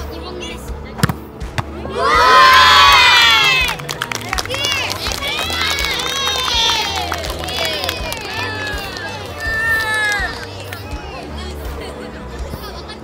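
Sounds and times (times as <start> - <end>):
children cheering and shouting: 1.8 - 3.8, 4.7 - 10.5.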